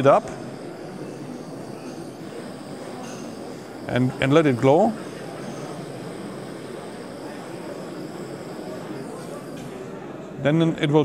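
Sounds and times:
gas torch flame hissing: 0.0s - 9.8s.

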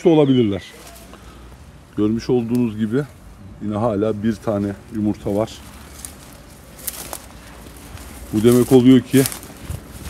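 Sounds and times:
footsteps through grass: 0.5s - 10.0s.

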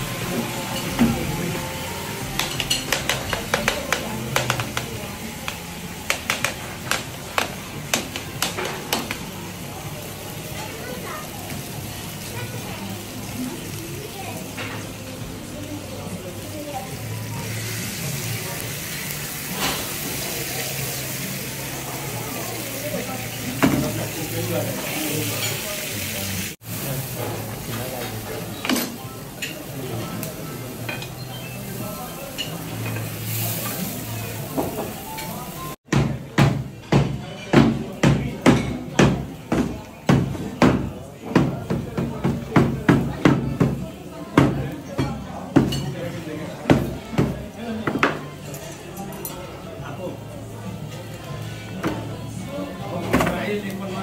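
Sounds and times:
food sizzling in a pan: 0.0s - 35.8s
murmur of voices: 0.0s - 54.0s.

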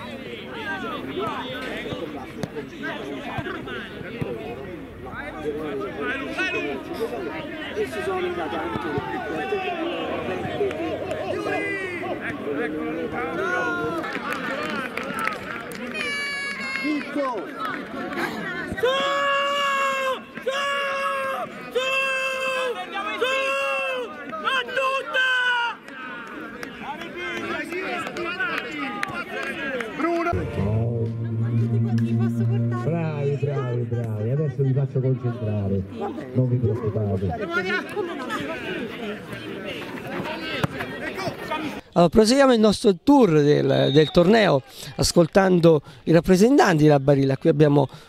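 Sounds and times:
people calling and talking: 0.0s - 48.0s.

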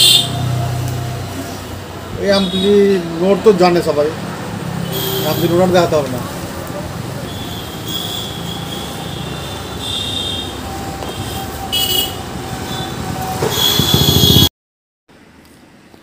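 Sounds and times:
road traffic noise: 0.0s - 14.5s.

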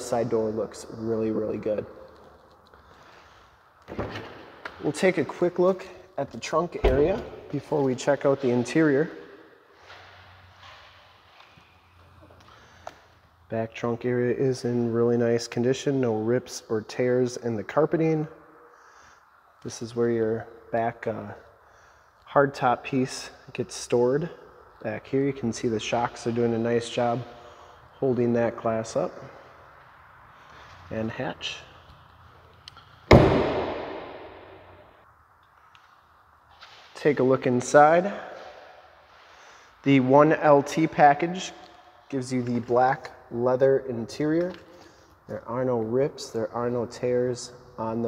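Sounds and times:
car glass hatch slamming: 6.8s - 7.3s.

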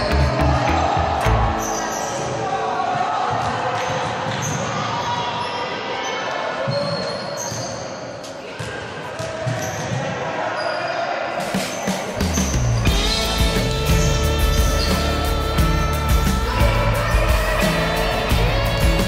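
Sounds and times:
music: 0.0s - 3.5s, 11.4s - 19.0s
voices in a hall: 0.0s - 19.0s.

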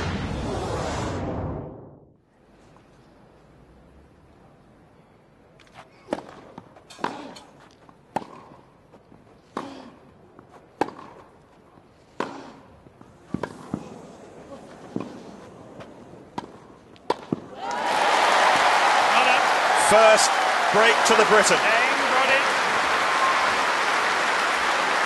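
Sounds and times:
tennis racket hitting ball: 6.1s - 7.5s, 8.1s - 8.6s, 10.8s - 11.3s, 13.3s - 13.9s, 16.3s - 17.5s
crowd applauding loudly: 17.6s - 25.0s.

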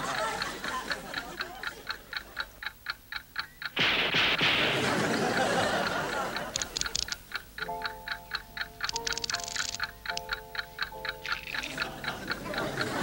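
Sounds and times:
clock-like ticking: 0.0s - 13.0s.

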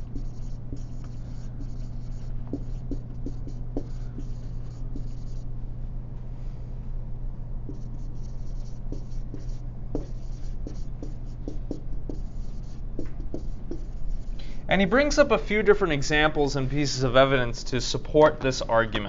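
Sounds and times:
writing scratches on a board: 0.0s - 5.4s, 7.7s - 14.3s
low room hum: 0.0s - 19.0s.

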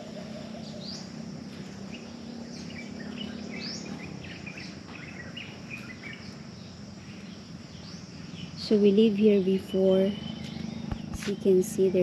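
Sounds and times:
birds chirping: 0.0s - 12.0s
steady low hum: 0.0s - 12.0s.

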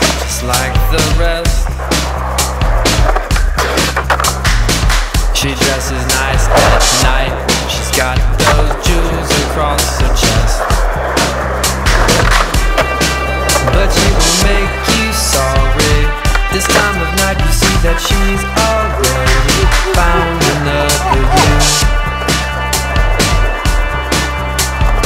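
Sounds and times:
skateboard clacking: 0.0s - 23.5s
skateboard wheels rolling on concrete: 0.0s - 25.0s
indie pop song with singing: 13.6s - 21.9s.

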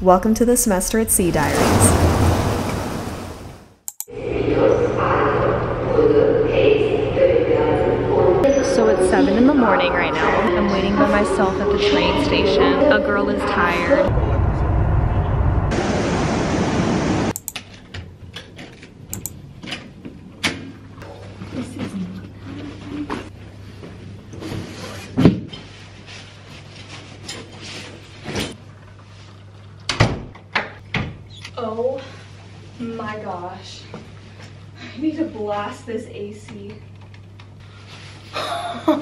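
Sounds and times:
station hum and hubbub: 0.0s - 1.6s, 4.1s - 14.5s
rushing whoosh: 1.4s - 3.6s
clicks: 17.3s - 17.7s.

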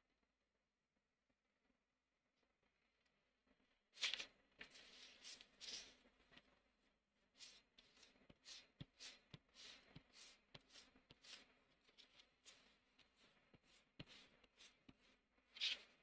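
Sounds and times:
eraser rubbing on paper: 7.4s - 16.0s.

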